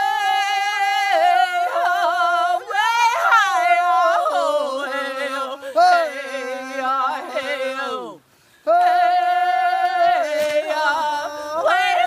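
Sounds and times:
group singing unaccompanied: 0.0 - 12.0.

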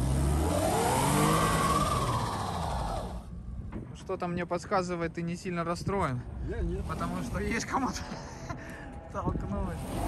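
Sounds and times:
car engine revving: 0.0 - 3.3, 9.7 - 10.0.

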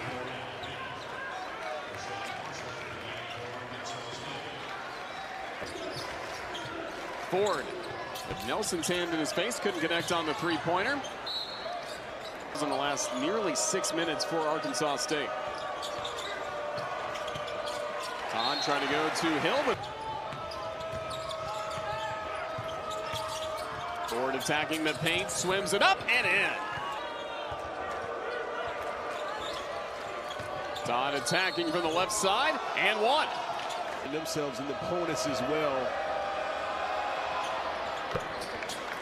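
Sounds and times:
sneakers squeaking: 4.9 - 6.9, 7.6 - 8.9, 9.7 - 13.6, 15.3 - 34.1, 37.4 - 39.0.

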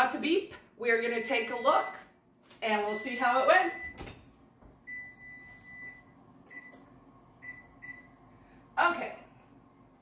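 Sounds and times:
oven timer beeping: 1.0 - 2.1, 2.8 - 4.1, 4.8 - 8.2.

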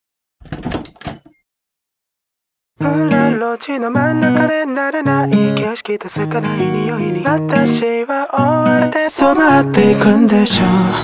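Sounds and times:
clattering knocks: 0.4 - 1.4.

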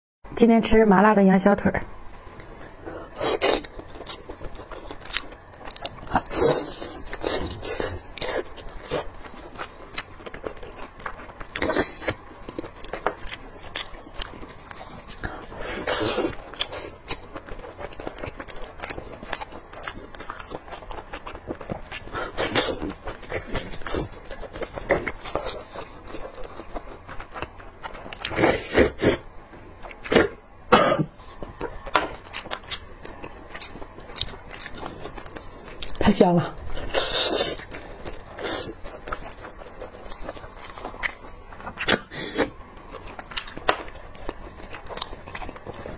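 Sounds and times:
wet chewing and mouth smacks: 3.2 - 29.2, 36.6 - 45.9
biting into meat: 36.8 - 42.6.

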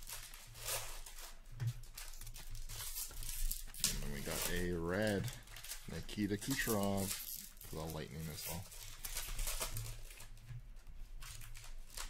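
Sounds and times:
card packs being torn open: 0.0 - 10.4, 11.2 - 12.0
plastic wrappers crinkling: 0.0 - 12.0.

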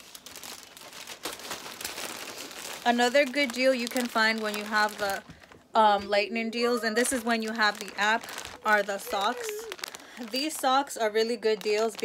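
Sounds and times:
plastic packaging crinkling: 0.0 - 6.0, 6.6 - 12.0.

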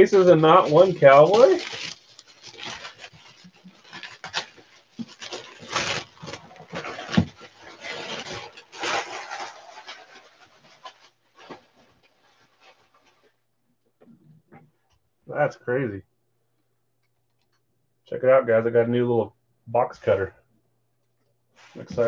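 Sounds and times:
plastic shrink-wrap tearing: 0.0 - 13.2.

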